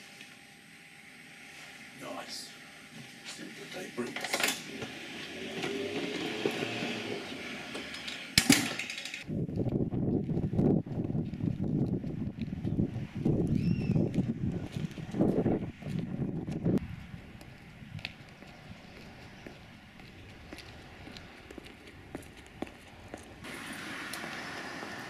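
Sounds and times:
rumbling street noise: 3.8s - 25.0s
door shutting: 4.0s - 9.2s.

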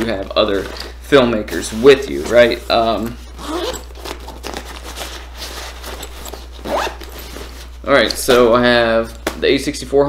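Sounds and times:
zipper rasping pulls: 3.3s - 7.6s.

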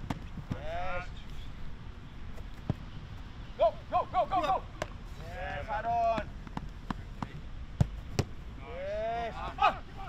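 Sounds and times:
football being kicked: 0.0s - 0.8s, 6.1s - 8.4s
man shouting: 3.6s - 4.7s, 8.6s - 10.0s.

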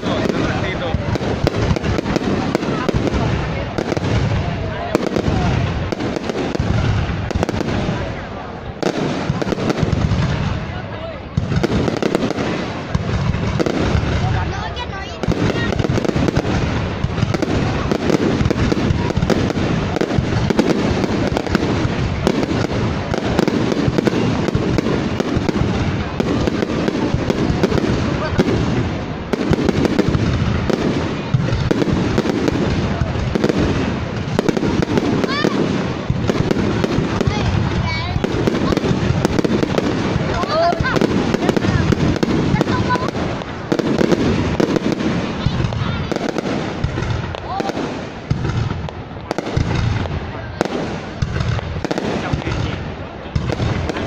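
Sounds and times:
fireworks bangs and crackles: 0.0s - 54.0s.

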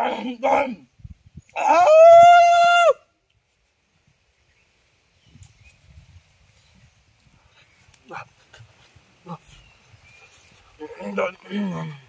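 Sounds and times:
man's wordless vocal sounds: 10.8s - 12.0s.

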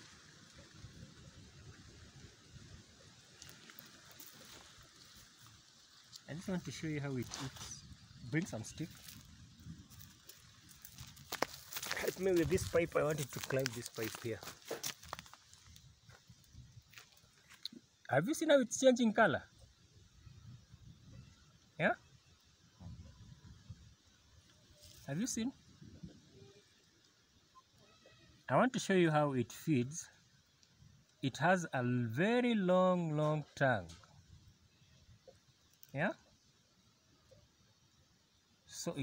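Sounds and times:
faint light ticks: 30.5s - 31.2s.

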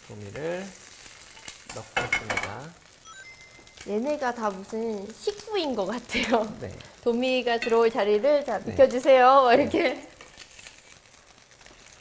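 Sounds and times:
pan sizzling and bubbling: 0.0s - 12.0s.

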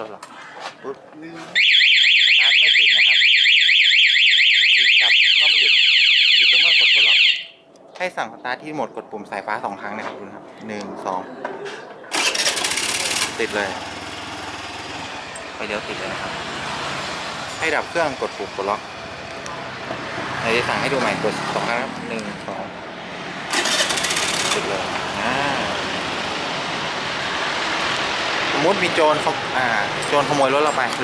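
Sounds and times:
electric starter cranking: 12.1s - 13.7s, 23.5s - 24.7s.

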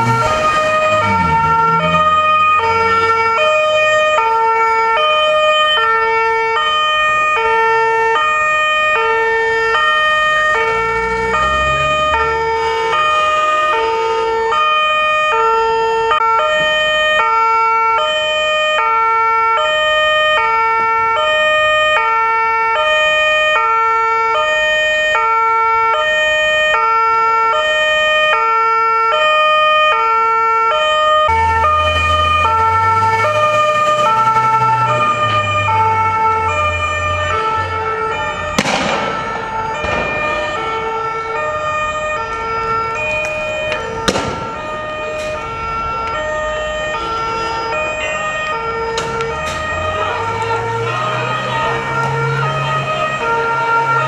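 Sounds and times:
two-tone siren: 0.0s - 54.0s.

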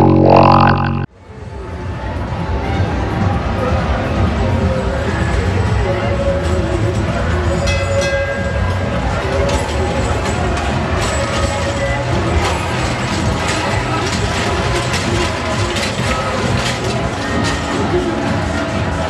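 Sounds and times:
roller coaster wheels clattering: 2.3s - 19.0s.

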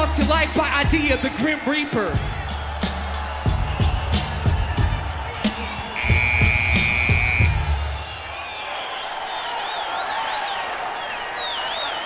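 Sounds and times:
hip-hop beat: 0.0s - 7.9s
crowd cheering: 0.0s - 12.0s
steady electronic tone: 6.0s - 7.5s.

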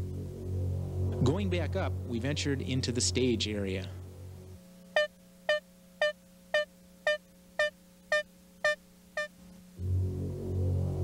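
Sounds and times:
low synthesizer drone: 0.0s - 7.1s, 8.6s - 11.0s.

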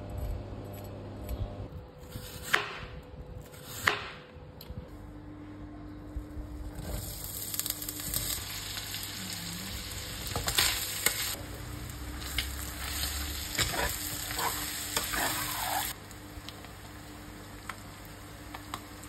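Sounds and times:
food sizzling in frying pan: 7.1s - 19.0s.

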